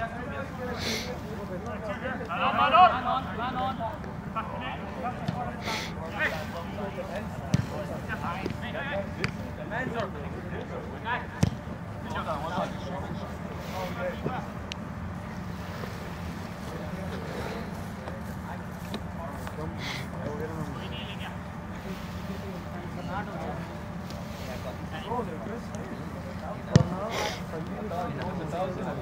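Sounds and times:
steady low hum: 0.0s - 29.0s
players calling and shouting: 0.4s - 28.5s
ball being kicked: 26.7s - 27.0s.

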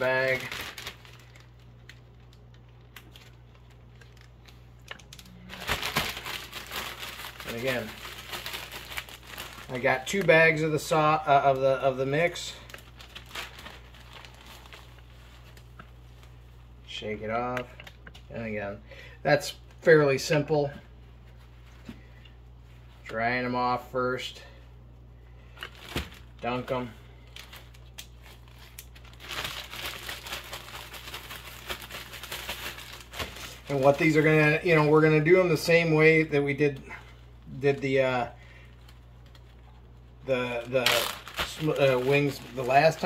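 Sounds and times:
plastic bag crinkling: 0.0s - 16.3s, 25.5s - 35.7s, 38.7s - 43.0s
steady low hum: 0.0s - 43.0s
bag shaken with chicken crackling: 5.5s - 10.6s, 29.1s - 34.5s, 40.6s - 43.0s.

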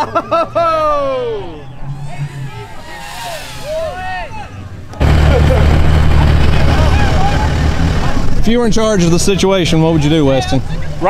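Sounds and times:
truck engine rumbling: 0.0s - 11.0s
voices of onlookers: 0.0s - 11.0s.

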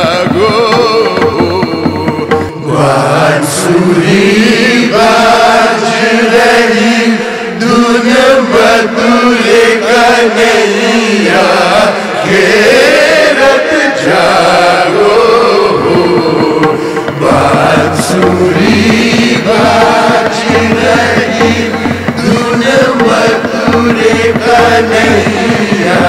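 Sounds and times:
chorus of voices chanting: 2.5s - 26.0s.

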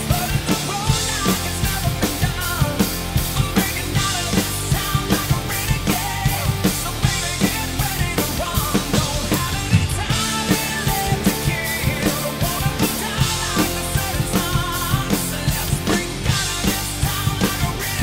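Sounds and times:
full-band rock recording: 0.0s - 18.0s
rock drum kit played hard: 0.0s - 18.0s.

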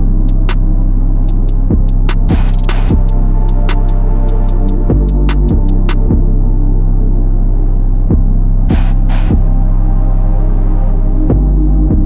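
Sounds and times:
deep sustained bass: 0.0s - 12.0s.

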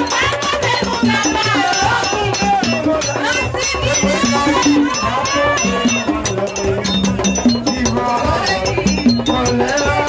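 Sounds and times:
drums: 0.0s - 10.0s
person singing: 0.0s - 10.0s
wood block percussion: 0.0s - 10.0s.

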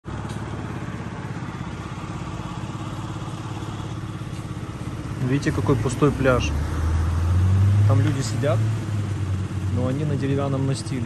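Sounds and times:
motorbike engine running: 0.0s - 11.0s.

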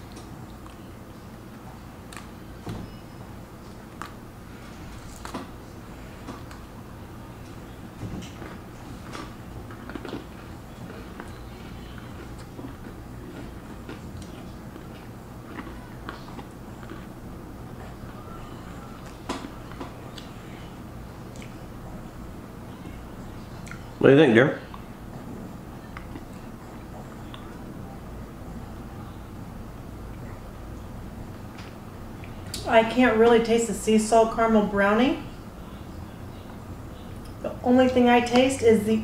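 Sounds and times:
low room hum: 0.0s - 39.0s
cookies crunching while chewed: 7.5s - 20.7s.

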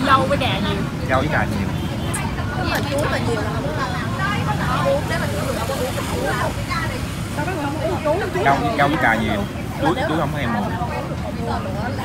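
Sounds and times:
indistinct background chatter: 0.0s - 12.0s
road traffic rumble: 0.0s - 12.0s
voices talking: 0.0s - 12.0s.

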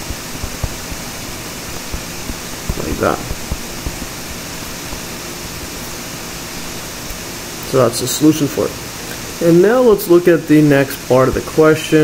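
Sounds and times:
background hiss: 0.0s - 12.0s
faint low hum: 0.0s - 12.0s.

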